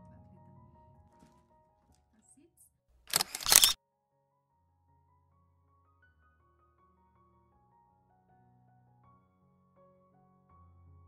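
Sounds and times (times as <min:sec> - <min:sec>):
camera shutter click: 0:03.1 - 0:03.8.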